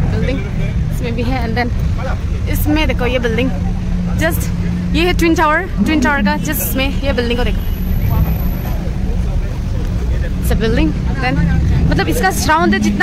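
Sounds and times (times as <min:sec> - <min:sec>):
city street traffic rumble: 0:00.0 - 0:13.0.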